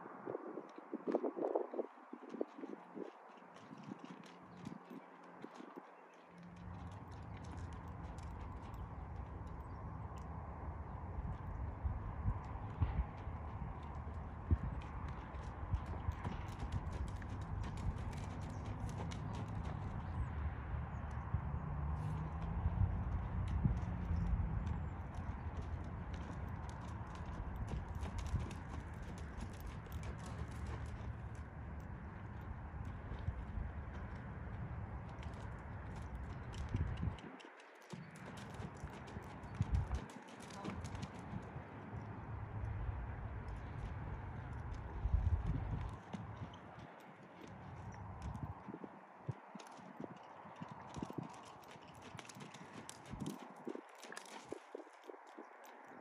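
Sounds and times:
horse hoofbeats on sand: 2.2 - 10.4, 12.3 - 42.7, 43.3 - 56.0
steady low rumble: 6.6 - 37.2, 38.4 - 46.4.

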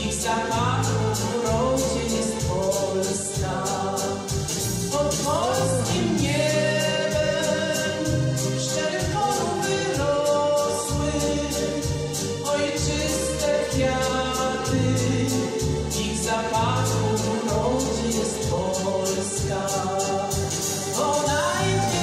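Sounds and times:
backing track with beat and bass: 0.0 - 22.0
woman singing: 0.0 - 22.0.

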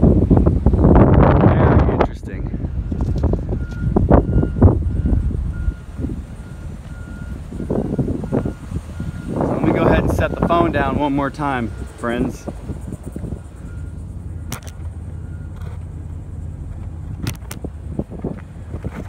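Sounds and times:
wind buffeting microphone: 0.0 - 19.0
reversing alarm beeping: 2.8 - 15.7.

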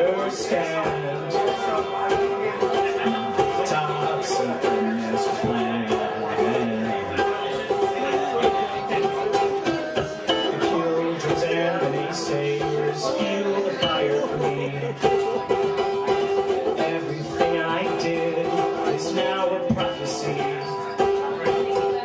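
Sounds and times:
man singing: 0.0 - 22.0
ukulele strumming: 0.0 - 22.0.

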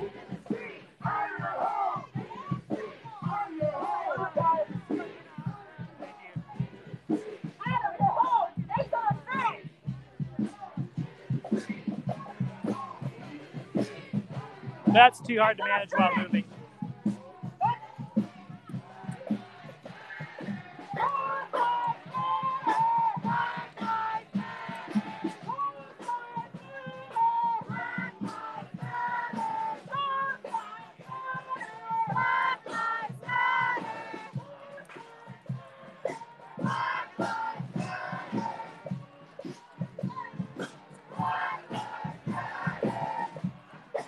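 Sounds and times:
crowd chanting and singing: 0.0 - 44.0.

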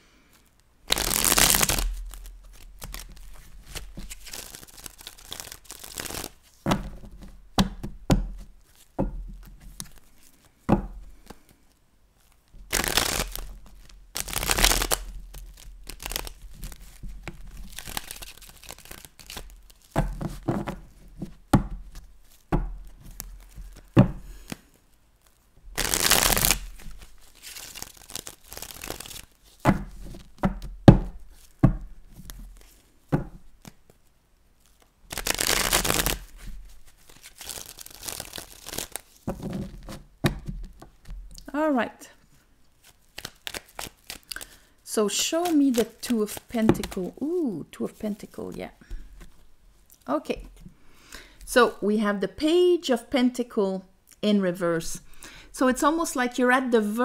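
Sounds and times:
cards being shuffled: 0.3 - 34.0, 34.6 - 41.5, 42.8 - 44.6, 45.2 - 49.5.

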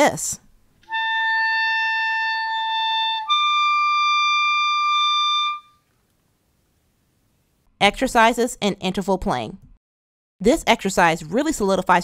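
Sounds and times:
clarinet playing held notes: 0.8 - 5.8.

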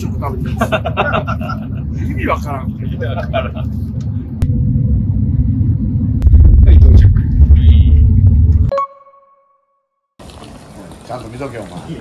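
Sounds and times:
airliner engine and airflow rumble: 0.0 - 8.7.

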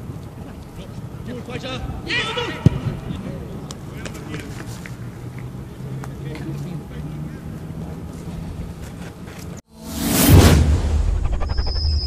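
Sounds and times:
distant players shouting: 1.5 - 3.6.

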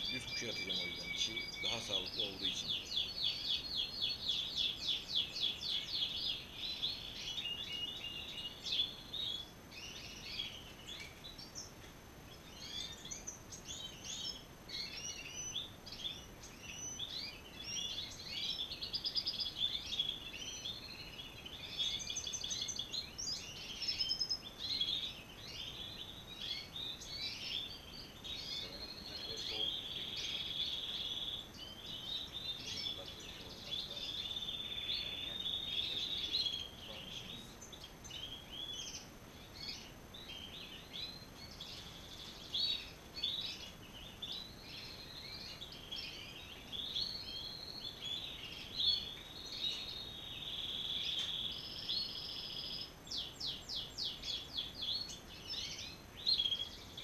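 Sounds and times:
goldfinches singing and twittering: 0.0 - 57.0.

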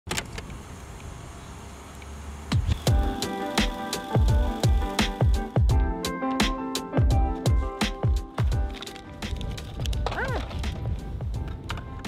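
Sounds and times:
street traffic rumble: 0.1 - 5.5.

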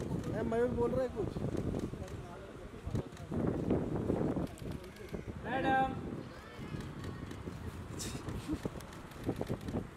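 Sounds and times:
street noise: 0.0 - 9.9.

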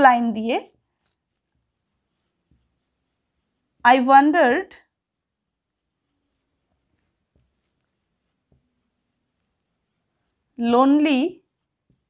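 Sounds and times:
marker writing on whiteboard: 0.2 - 12.0.

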